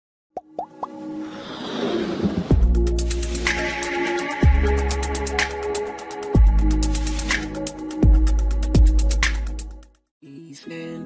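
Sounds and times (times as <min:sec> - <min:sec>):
quick rising pops: 0:00.6 - 0:02.6
intro music: 0:02.0 - 0:09.9.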